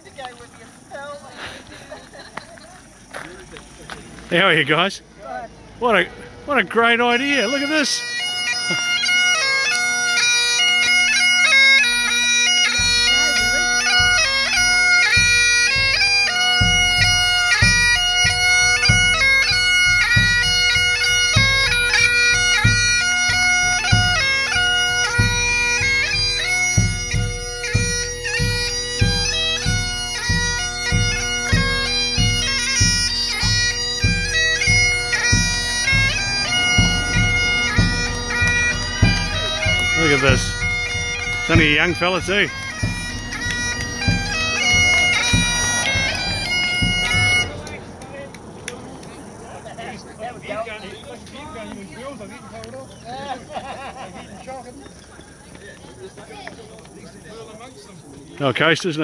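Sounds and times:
bagpipes playing over drones: 0:03.1 - 0:48.5
bass drum beat: 0:23.6 - 0:47.6.

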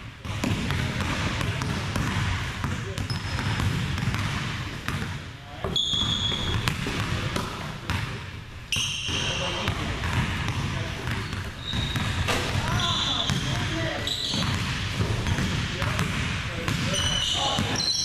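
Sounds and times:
basketball dribbling on wood floor: 0:00.2 - 0:05.1
sneakers squeaking on court: 0:00.2 - 0:18.0.

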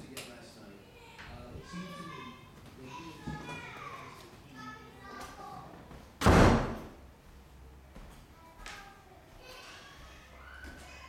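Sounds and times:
loud bang: 0:06.2 - 0:07.0.

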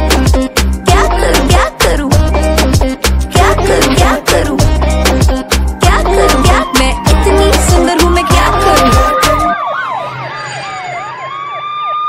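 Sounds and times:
drum beat: 0:00.1 - 0:09.5
wailing siren: 0:05.6 - 0:12.0.

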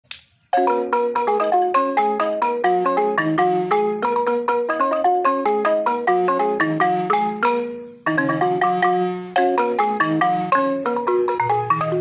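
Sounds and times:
wooden xylophones played with mallets: 0:00.5 - 0:12.0.

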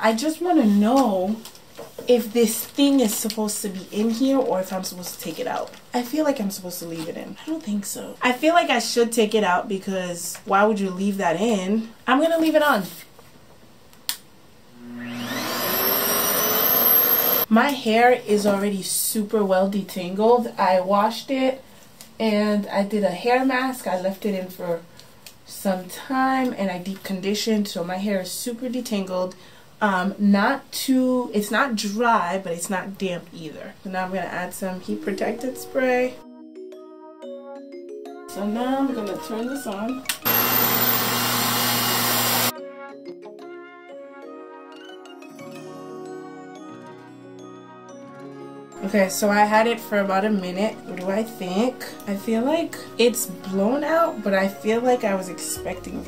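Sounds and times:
hair dryer motor whine: 0:14.8 - 0:17.5, 0:40.2 - 0:42.5
light music with chiming notes: 0:35.0 - 0:40.3, 0:42.6 - 0:56.0.

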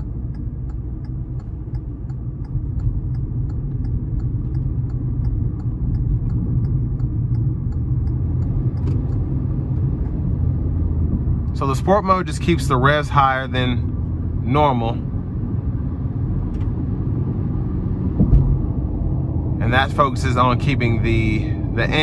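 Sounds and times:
light ticking: 0:00.0 - 0:10.2
car engine from inside cabin: 0:00.0 - 0:22.0.

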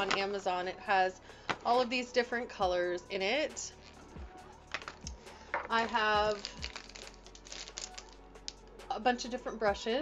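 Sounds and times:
makeup items clicking on table: 0:00.0 - 0:00.3, 0:01.5 - 0:01.7, 0:04.7 - 0:08.6.

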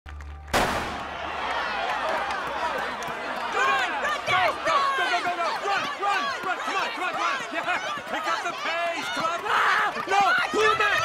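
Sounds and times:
crowd cheering and yelling: 0:00.1 - 0:11.0.

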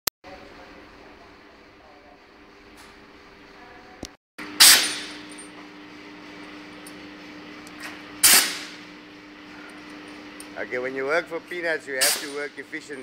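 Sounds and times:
steady machine hum: 0:00.3 - 0:13.0
loud sharp machine bangs: 0:04.6 - 0:05.3, 0:08.2 - 0:08.8, 0:12.0 - 0:12.5.

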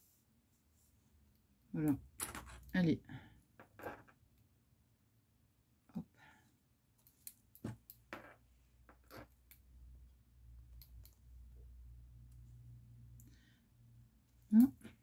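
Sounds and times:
soft clicks of handling: 0:07.0 - 0:08.1.

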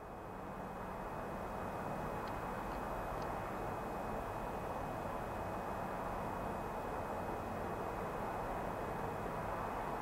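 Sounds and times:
faint ticks: 0:02.2 - 0:03.4.

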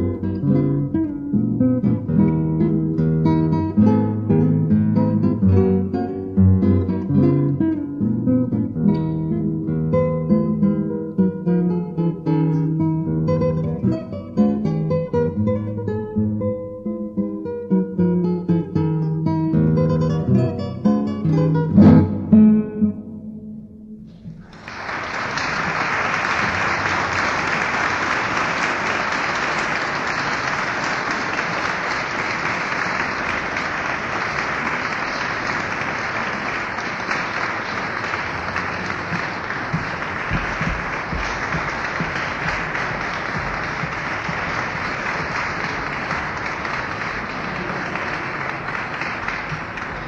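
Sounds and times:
audience applause: 0:24.2 - 0:50.0.

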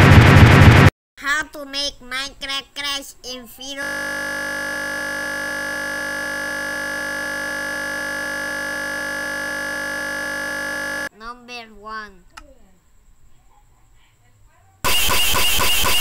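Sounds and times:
harsh looping computer buzz: 0:03.8 - 0:11.1, 0:14.9 - 0:16.0.

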